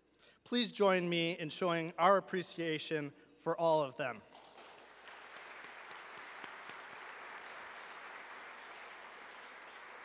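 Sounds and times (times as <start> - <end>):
audience applauding: 4.4 - 10.0.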